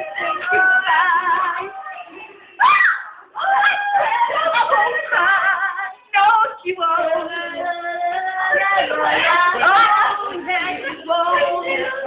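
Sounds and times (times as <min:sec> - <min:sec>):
young voices singing together: 0:00.0 - 0:12.0.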